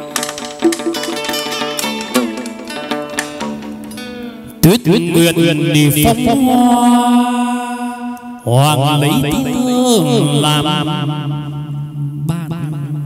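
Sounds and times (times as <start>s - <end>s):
plucked string accompaniment: 0.0s - 5.8s
person chanting held notes: 4.7s - 11.1s.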